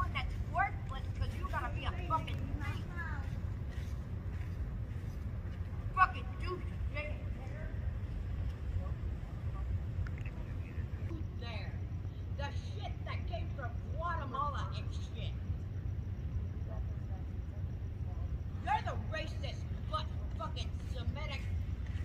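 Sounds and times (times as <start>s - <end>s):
distant unintelligible voices: 0.0s - 22.0s
steady low rumble: 0.0s - 22.0s.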